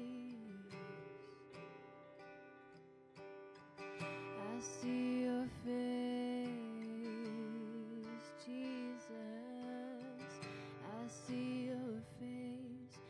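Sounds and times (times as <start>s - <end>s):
electric guitar: 0.0s - 13.0s
strummed acoustic guitar: 0.0s - 13.0s.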